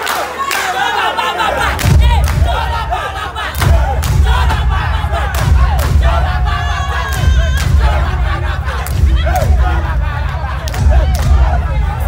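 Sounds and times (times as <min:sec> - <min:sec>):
crowd shouting and screaming: 0:00.0 - 0:12.0
deep heavy bass thumps: 0:01.6 - 0:12.0.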